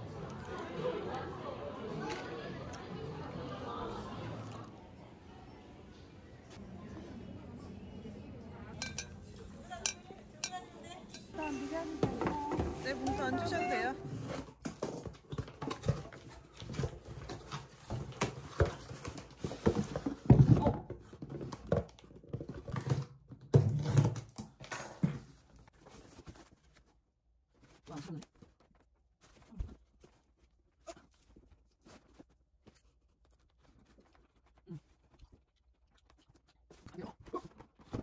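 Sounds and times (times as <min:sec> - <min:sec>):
person speaking: 0:09.4 - 0:14.1.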